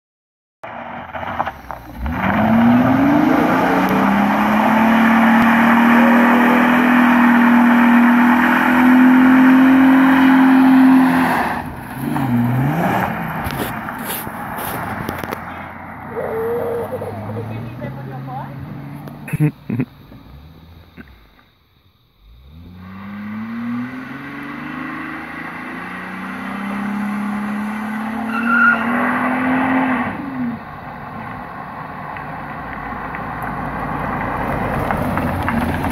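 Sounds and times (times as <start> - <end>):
car driving off: 0.6 - 35.9
car engine revving: 0.7 - 21.4, 22.1 - 35.9.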